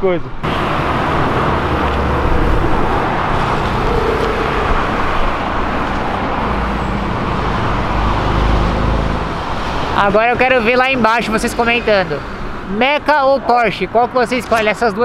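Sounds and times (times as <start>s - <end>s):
road noise: 0.0s - 15.0s
sports car engines rumbling: 0.2s - 15.0s.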